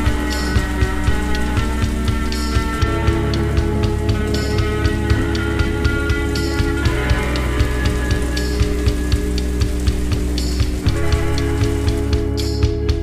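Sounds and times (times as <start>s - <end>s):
sharp ticks: 0.0s - 12.8s
rain hiss: 0.0s - 13.0s
slowed reverberant song: 0.0s - 13.0s.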